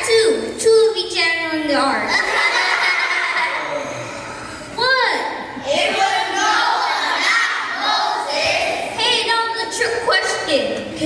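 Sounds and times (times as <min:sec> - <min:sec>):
murmur of voices: 0:01.8 - 0:11.0.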